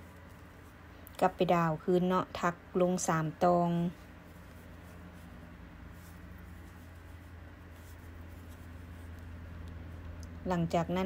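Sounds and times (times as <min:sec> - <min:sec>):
steady low hum: 0:00.0 - 0:11.0
yarn rustling: 0:00.0 - 0:11.0.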